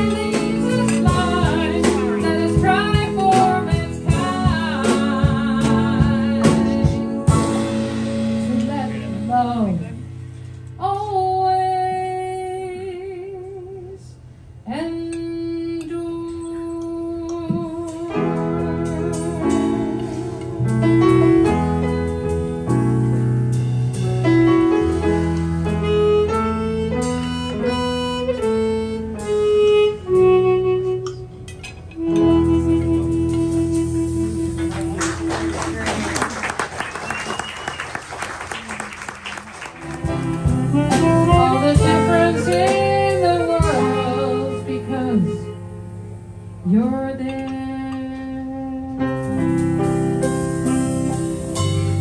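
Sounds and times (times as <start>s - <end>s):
bass line: 0.0s - 12.9s, 32.0s - 36.6s, 39.8s - 47.2s
drums: 0.0s - 12.9s, 14.1s - 52.0s
piano chords: 0.0s - 13.3s, 16.2s - 37.9s, 39.6s - 52.0s
chromatic harmonica: 25.7s - 35.7s, 40.1s - 46.2s.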